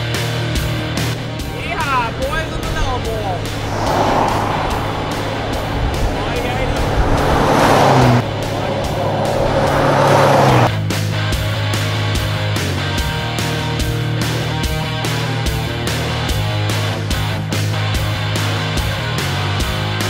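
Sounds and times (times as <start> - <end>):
rock music with steady beat: 0.0 - 2.2, 10.8 - 20.0
vehicles driving past: 0.0 - 12.1.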